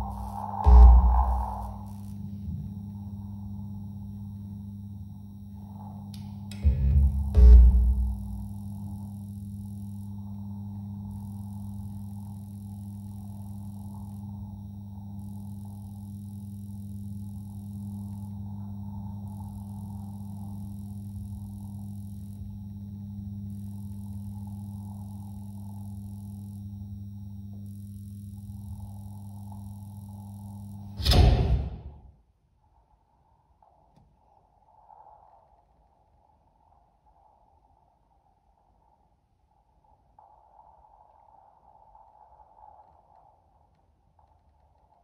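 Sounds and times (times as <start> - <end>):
high hiss: 0.0 - 31.7
low electric hum: 0.0 - 32.2
loud sudden sound: 31.0 - 32.0.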